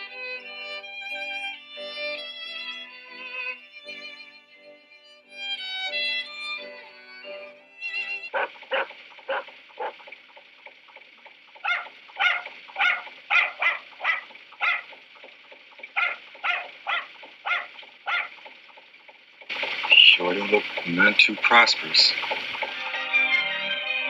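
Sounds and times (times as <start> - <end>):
violin notes: 0.0 - 8.3
dog barking sharply: 8.3 - 10.0, 11.6 - 15.0, 15.9 - 18.4.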